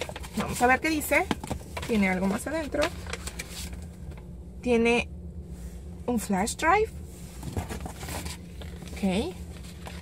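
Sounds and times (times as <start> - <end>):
paper and cardboard rustling: 0.0 - 4.0, 7.3 - 10.0.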